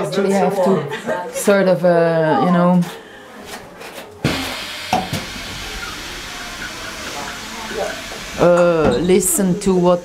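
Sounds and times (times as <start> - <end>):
steady hiss: 4.3 - 10.0.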